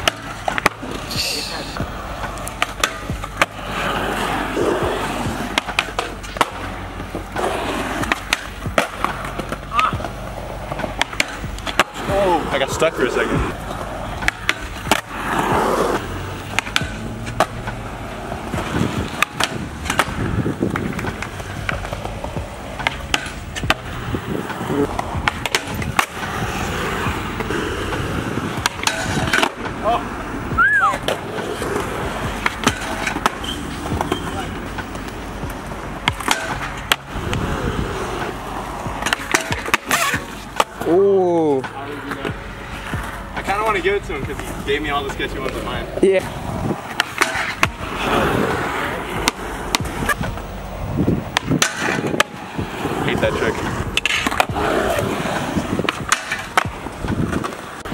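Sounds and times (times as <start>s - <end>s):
skateboard slapping on landing: 0.0s - 1.1s, 1.8s - 6.7s, 7.4s - 12.3s, 13.7s - 17.8s, 18.4s - 29.8s, 30.8s - 40.9s, 46.8s - 50.4s, 51.3s - 53.0s, 53.6s - 57.9s
skateboard tail pops: 0.0s - 1.1s, 1.8s - 3.6s, 4.5s - 6.7s, 8.0s - 12.0s, 16.5s - 17.8s, 18.5s - 26.4s, 27.1s - 29.8s, 30.6s - 37.6s, 38.2s - 40.9s, 46.9s - 48.4s, 49.2s - 50.4s, 51.2s - 52.8s, 53.9s - 57.9s
skateboard scraping metal rail: 0.0s - 29.9s, 30.7s - 41.0s, 45.3s - 50.6s, 51.3s - 57.9s
skateboards rolling on concrete: 0.0s - 57.9s.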